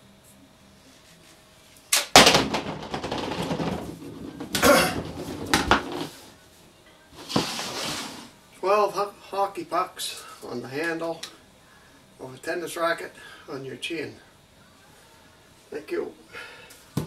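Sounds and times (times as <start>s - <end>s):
hockey pucks clattering: 2.1s - 6.2s
loud knock: 2.2s - 6.0s.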